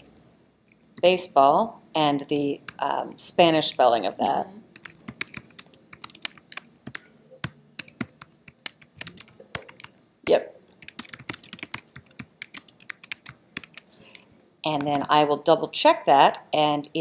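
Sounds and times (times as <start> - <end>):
computer keyboard typing: 3.6 - 10.0, 10.7 - 14.2.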